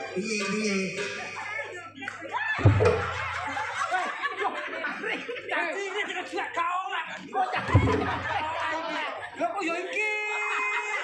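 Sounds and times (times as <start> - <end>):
audience laughing: 0.0 - 11.0
chatter: 0.0 - 11.0.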